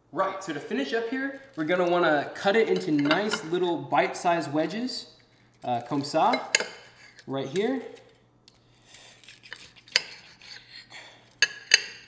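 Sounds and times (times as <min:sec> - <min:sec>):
cutlery clinking on ceramic plate: 0:02.7 - 0:03.5, 0:11.4 - 0:12.0
knife sawing through crispy crust: 0:06.8 - 0:07.2, 0:08.8 - 0:11.2.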